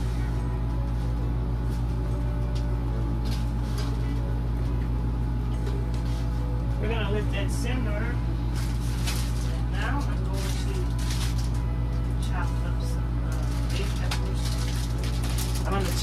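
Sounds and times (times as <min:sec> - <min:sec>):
low machine hum: 0:00.0 - 0:16.0.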